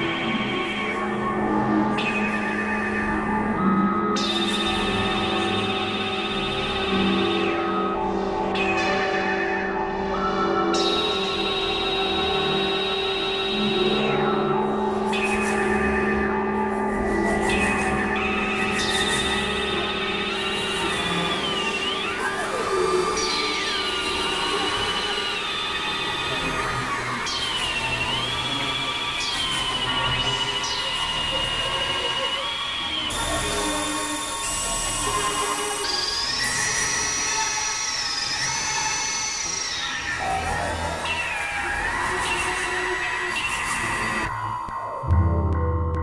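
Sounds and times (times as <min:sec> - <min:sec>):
synthesizer drone: 0:11.0 - 0:46.0
low synthesizer drone: 0:43.9 - 0:46.0.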